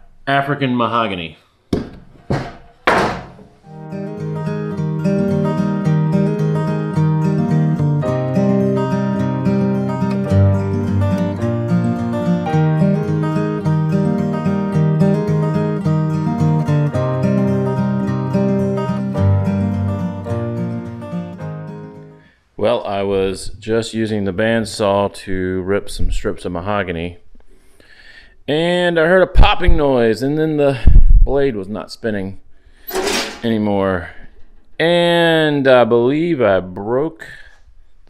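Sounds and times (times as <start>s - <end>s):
acoustic guitar music: 3.5s - 22.3s.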